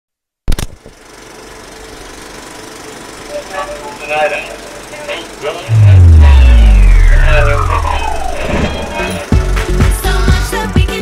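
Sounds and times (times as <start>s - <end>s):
pulsing mechanical rumble: 5.7s - 9.6s.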